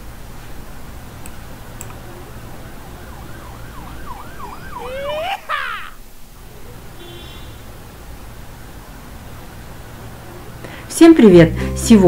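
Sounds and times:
low steady hum: 0.0 - 12.0
falling pitch sweeps: 1.9 - 5.9.

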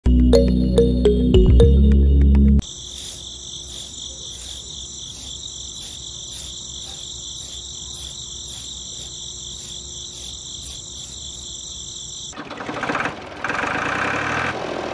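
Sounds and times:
crickets chirping: 2.6 - 12.4.

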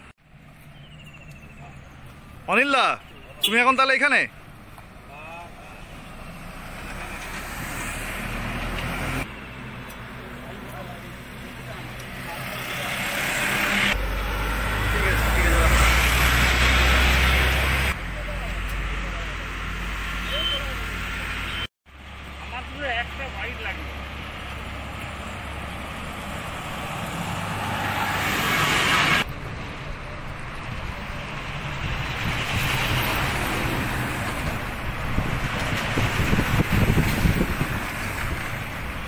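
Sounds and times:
cars passing close by: 3.8 - 39.0.

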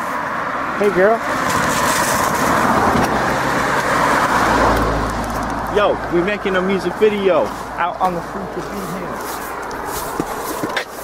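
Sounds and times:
car driving past: 0.0 - 10.6.

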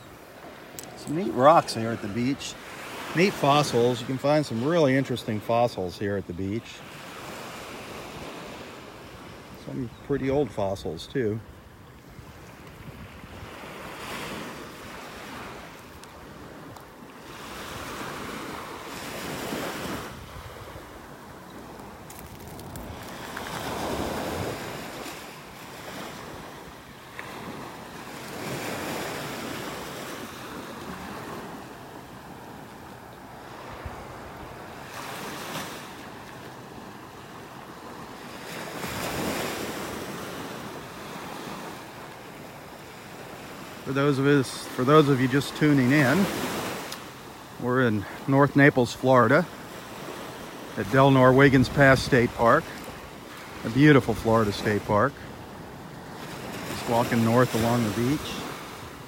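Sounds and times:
small waves breaking on sand: 0.0 - 59.0.

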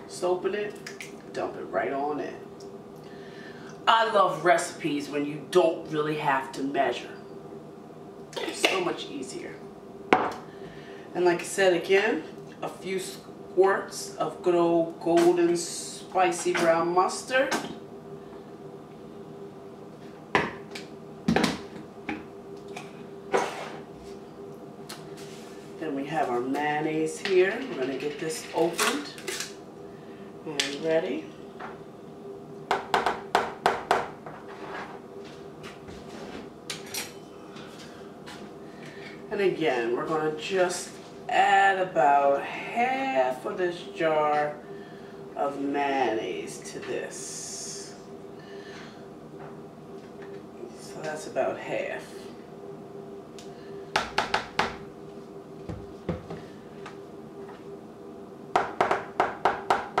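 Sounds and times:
faint steady hum: 0.0 - 60.0.

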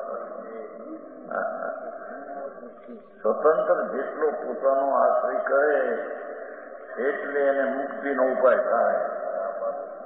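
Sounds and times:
man lecturing: 0.0 - 9.9.

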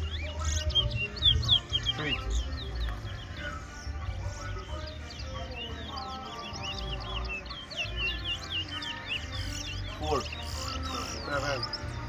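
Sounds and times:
finches singing: 0.0 - 12.0.

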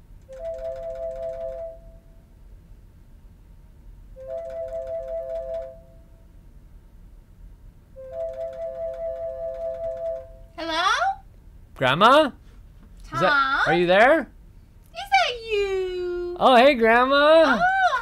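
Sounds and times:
two-note electronic ringing trill: 0.3 - 2.2, 4.2 - 6.1, 8.0 - 10.6.

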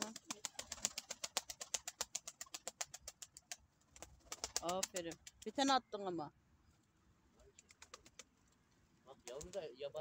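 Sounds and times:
pigeons pecking grain clicks: 0.0 - 5.6, 7.5 - 8.6.

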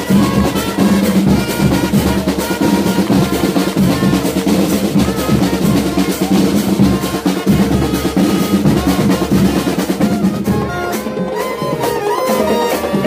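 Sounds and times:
snare and bass drum rolls: 0.0 - 13.0
trumpets and trombones melody: 0.0 - 13.0.

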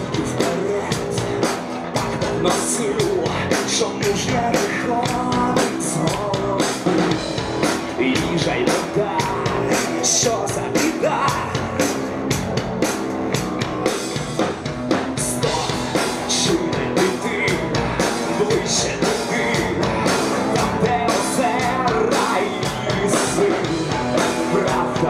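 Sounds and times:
drums with steady beat: 0.0 - 25.0
electric guitar: 0.0 - 25.0
male lead singer: 0.0 - 25.0.

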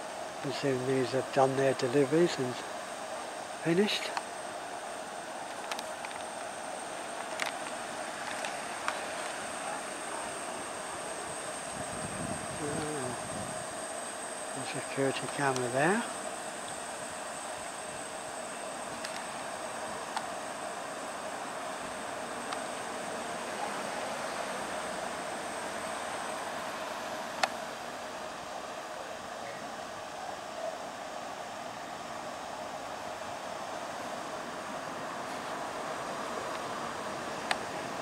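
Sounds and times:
machinery drone: 0.0 - 38.0
thin high whine: 0.0 - 38.0.

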